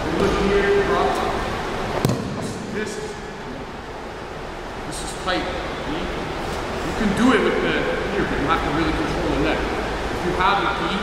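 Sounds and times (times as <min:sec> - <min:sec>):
sharp slap on a mat: 0:02.0 - 0:02.5.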